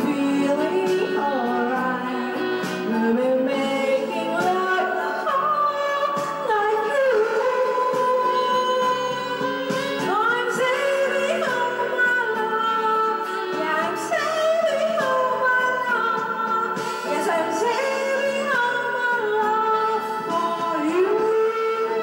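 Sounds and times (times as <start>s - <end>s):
karaoke backing track: 0.0s - 22.0s
woman singing into a microphone: 0.0s - 22.0s.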